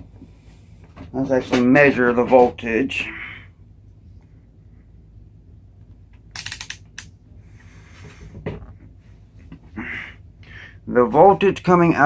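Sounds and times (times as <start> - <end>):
rotary dial clicking: 6.4 - 7.1.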